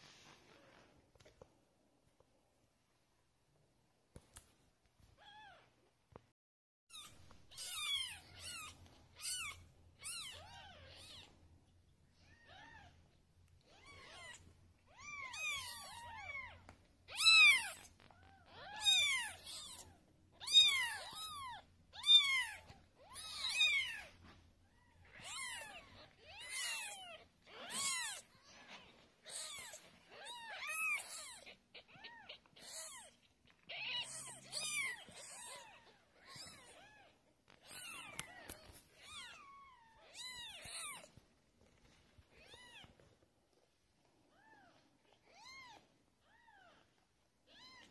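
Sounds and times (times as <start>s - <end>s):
kittens mewing: 13.6s - 41.1s.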